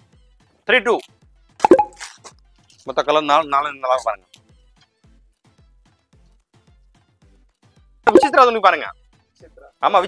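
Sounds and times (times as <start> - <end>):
man speaking: 8.1 - 8.9.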